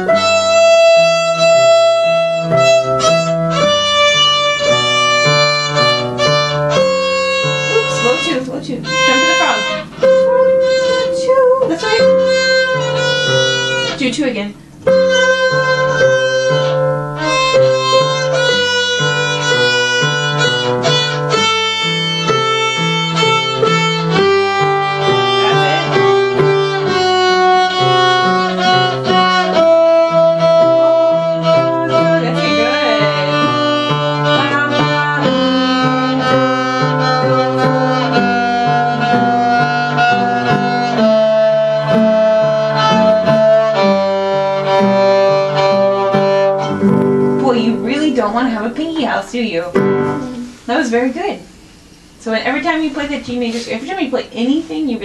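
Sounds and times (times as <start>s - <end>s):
violin melody: 0.0s - 50.6s
piano chords: 0.0s - 51.3s.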